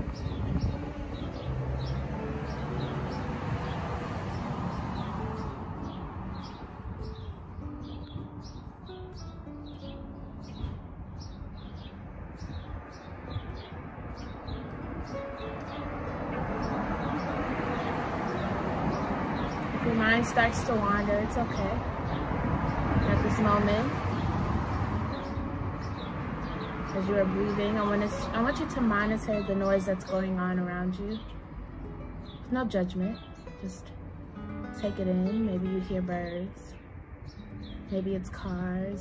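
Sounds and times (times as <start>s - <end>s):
traffic rumble: 0.0s - 39.0s.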